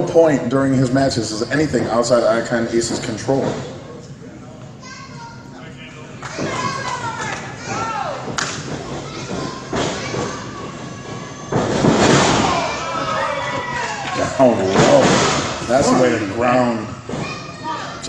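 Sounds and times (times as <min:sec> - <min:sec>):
crowd shouting: 0:06.2 - 0:08.4, 0:09.1 - 0:18.0
bodies hitting ring canvas: 0:11.5 - 0:13.0, 0:14.6 - 0:16.0.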